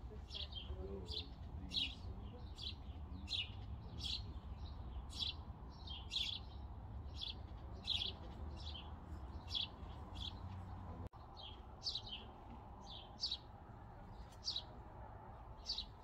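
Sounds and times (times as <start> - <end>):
small bird chirping: 0.2 - 13.5.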